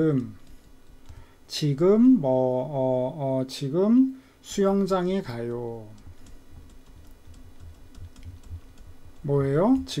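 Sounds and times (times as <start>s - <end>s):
stylus tapping on pen tablet: 6.0s - 10.0s.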